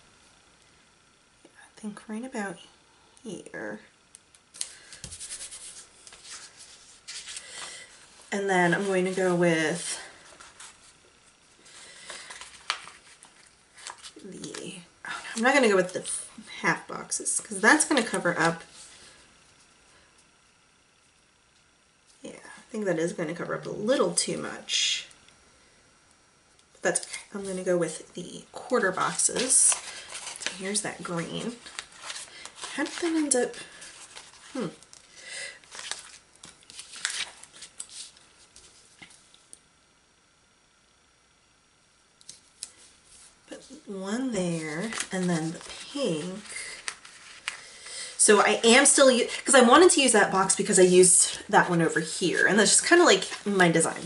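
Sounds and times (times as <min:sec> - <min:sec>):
paper sticker sheet rustling: 0:04.6 - 0:11.0, 0:12.0 - 0:16.3, 0:28.6 - 0:39.1, 0:44.5 - 0:47.8, 0:52.3 - 0:54.0.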